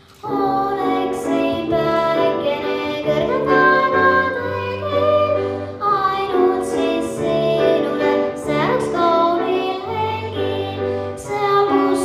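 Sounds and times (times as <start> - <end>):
grand piano accompaniment: 0.0 - 12.0
girl singing into a microphone: 0.1 - 12.0.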